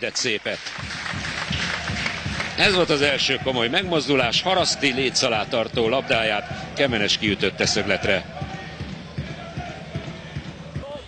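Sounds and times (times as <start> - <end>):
crowd background: 0.0 - 11.0
low irregular thuds: 0.8 - 11.0
distant voices shouting: 3.2 - 11.0.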